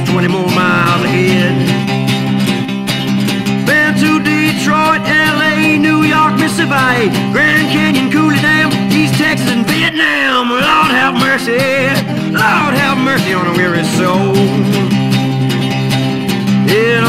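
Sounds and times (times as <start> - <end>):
acoustic guitar picked lead notes: 0.0 - 17.0
strummed guitar rhythm: 0.0 - 17.0.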